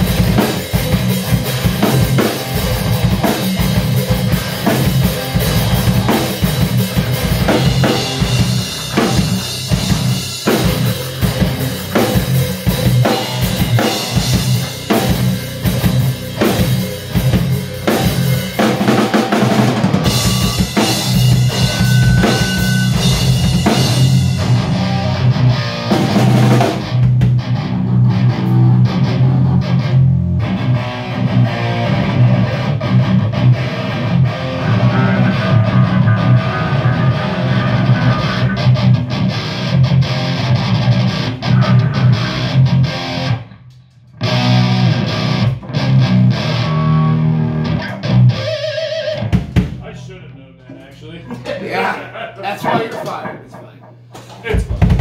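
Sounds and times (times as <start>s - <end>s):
electric guitars: 0.0s - 49.8s
drum kit: 0.0s - 50.0s, 52.6s - 55.0s.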